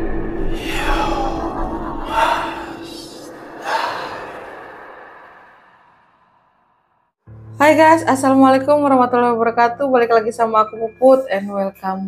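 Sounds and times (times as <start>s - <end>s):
breathy gasp horror effect: 0.0s - 6.8s.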